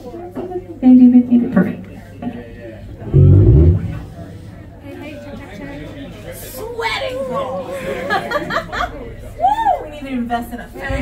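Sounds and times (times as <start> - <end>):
electric bass guitar notes: 2.9 - 5.0.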